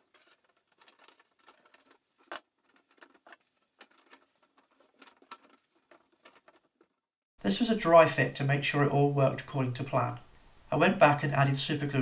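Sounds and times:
plastic pipe clicks and scrapes: 0.0 - 7.0.

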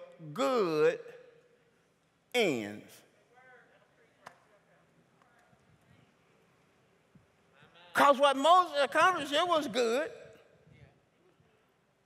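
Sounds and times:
man speaking loudly: 0.0 - 1.3, 2.3 - 3.2, 7.8 - 10.4.

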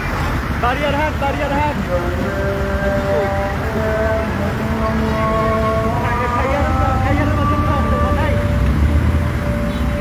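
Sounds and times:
vehicle engines rumbling in traffic: 0.0 - 10.0.

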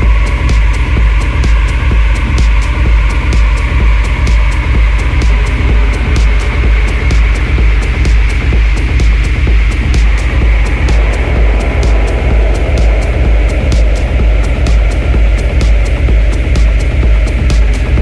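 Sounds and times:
continuous sub-bass: 0.0 - 18.0
crisp hi-hat ticks: 0.0 - 18.0.

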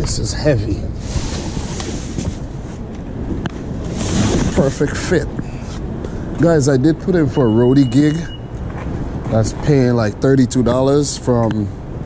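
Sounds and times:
street traffic: 0.0 - 12.0
wind on microphone: 0.0 - 12.0.

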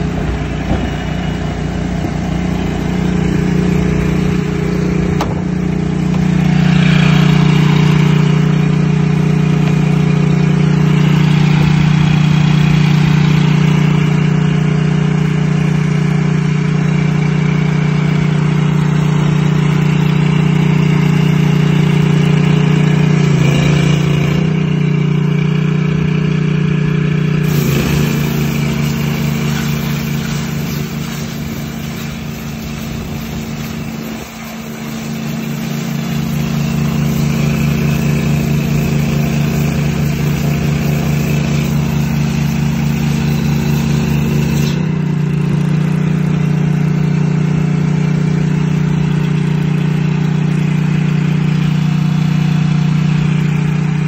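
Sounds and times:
engine running steadily: 0.0 - 54.0.

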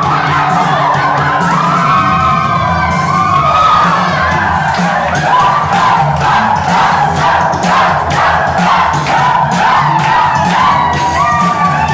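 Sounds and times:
dancers cheering and whooping: 0.0 - 11.9
loud dance music: 0.0 - 11.9.

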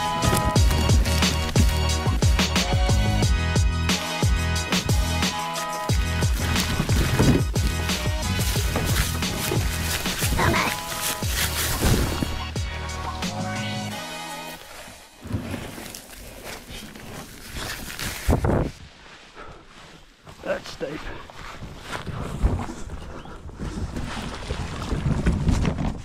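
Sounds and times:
plastic kayak dragged over ground: 0.0 - 2.4, 6.1 - 13.2, 13.9 - 18.8, 23.6 - 26.0
footsteps on dead leaves: 0.0 - 2.8, 4.8 - 13.3
music with bass beat and singing: 0.0 - 14.6.

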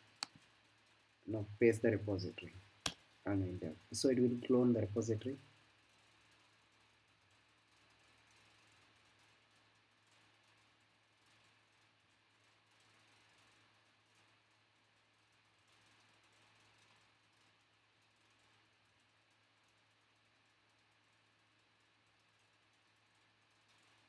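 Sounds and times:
faint ticks: 0.0 - 24.0
low steady hum: 0.0 - 24.0.

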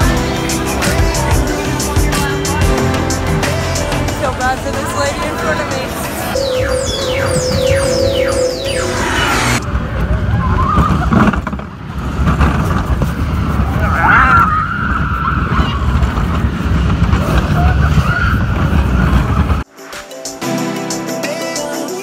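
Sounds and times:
ride vehicle rumbling at speed: 0.0 - 19.7.

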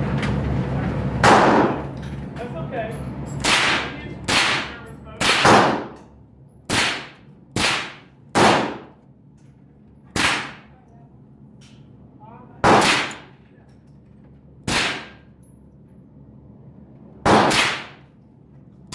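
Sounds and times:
gunshots with echo: 1.2 - 1.8, 3.4 - 6.0, 6.7 - 8.9, 10.2 - 10.7, 12.6 - 13.3, 14.7 - 15.2, 17.2 - 18.0.

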